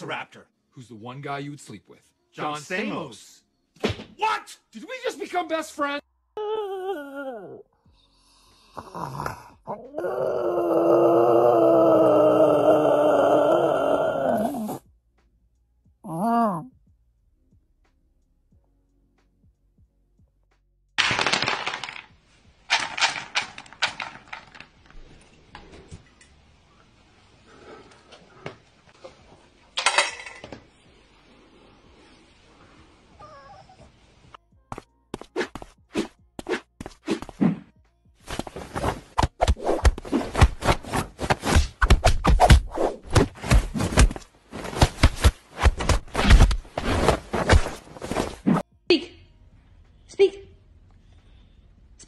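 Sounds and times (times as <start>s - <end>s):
low room noise: 21.0s - 35.1s.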